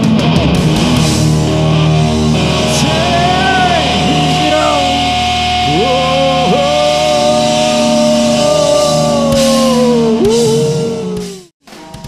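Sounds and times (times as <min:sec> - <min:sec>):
distorted electric guitar: 0:00.0 - 0:12.0.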